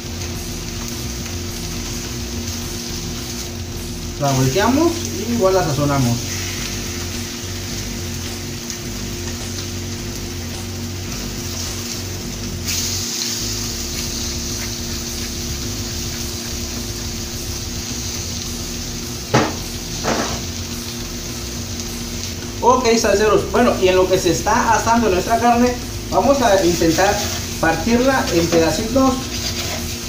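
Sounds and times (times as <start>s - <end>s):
steaks sizzling in oil: 0.0s - 30.0s.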